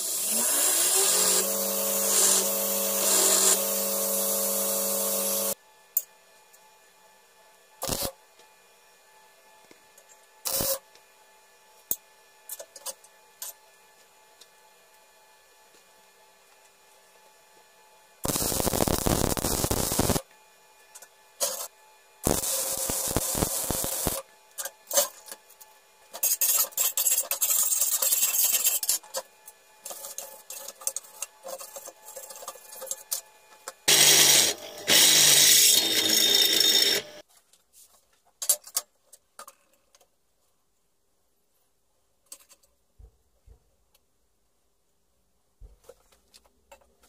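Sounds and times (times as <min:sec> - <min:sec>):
welder arc crackling: 0:00.0 - 0:05.6, 0:07.8 - 0:08.1, 0:18.2 - 0:20.3, 0:22.2 - 0:24.2.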